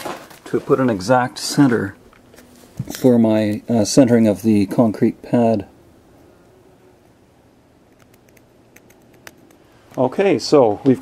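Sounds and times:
pencil ticking on concrete: 7.9 - 9.6.

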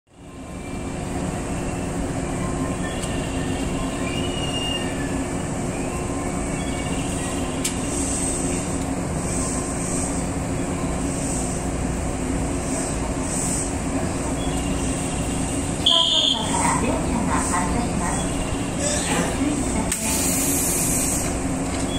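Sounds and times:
electric train equipment humming: 0.2 - 21.9.

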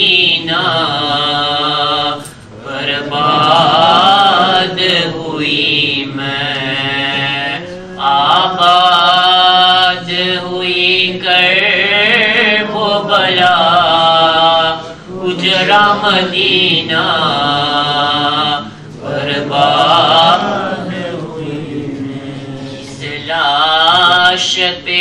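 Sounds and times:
man singing a lament unaccompanied: 0.0 - 25.0.

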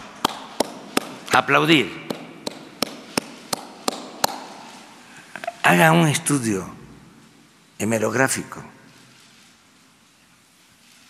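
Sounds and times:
person clapping hands slowly: 0.2 - 1.3, 2.1 - 4.7.

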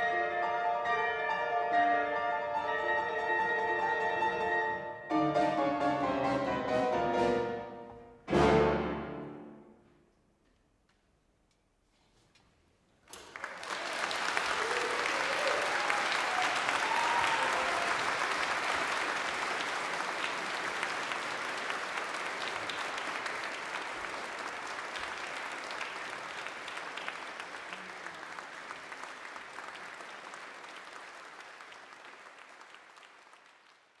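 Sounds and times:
audience applauding: 13.1 - 34.0.

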